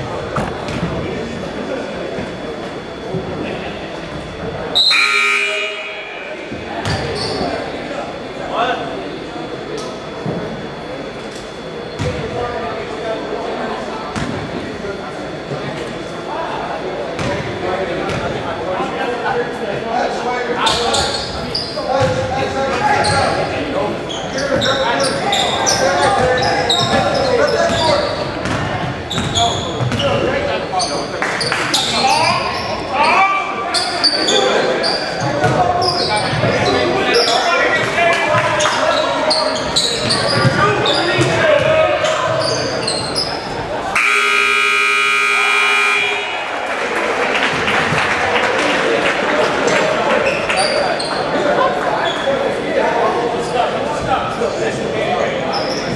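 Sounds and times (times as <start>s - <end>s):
scoreboard buzzer: 4.8s - 7.4s, 44.0s - 46.5s
sneakers squeaking on hardwood: 6.5s - 7.6s, 24.1s - 32.8s, 38.6s - 43.6s
basketball bouncing: 6.8s - 7.1s
people calling out: 38.4s - 46.9s.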